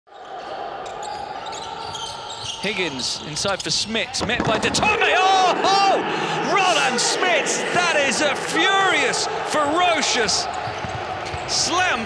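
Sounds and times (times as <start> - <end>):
basketball bouncing on hardwood: 10.6 - 11.5.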